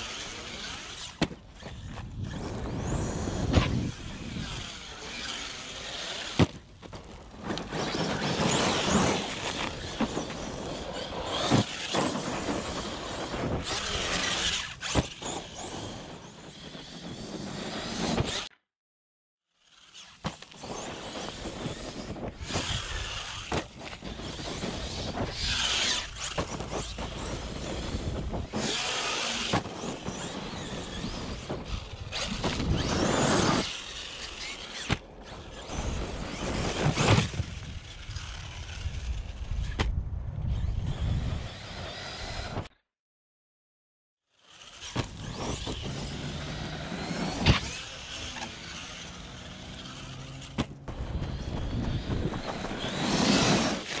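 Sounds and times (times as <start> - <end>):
rc truck motor whine: 0.0 - 18.6, 19.6 - 42.8, 44.3 - 54.0.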